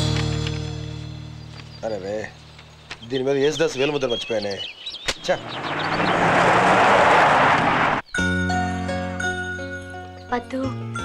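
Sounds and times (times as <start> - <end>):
car pulling away on dirt: 4.2 - 8.0
film music with chiming: 8.1 - 11.0.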